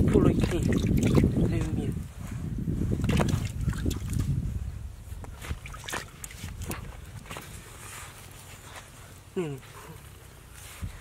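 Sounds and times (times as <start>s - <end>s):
person speaking: 9.3s - 10.0s.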